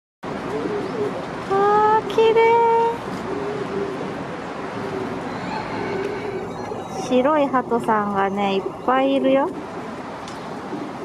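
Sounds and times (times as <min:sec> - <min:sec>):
pigeons cooing softly: 0:00.3 - 0:11.0
loud flat tones: 0:05.4 - 0:09.6.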